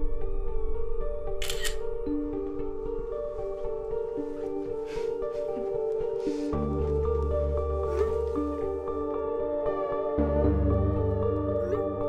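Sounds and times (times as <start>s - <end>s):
film score with sustained notes: 0.0s - 12.0s
camera shutter click: 1.4s - 1.8s.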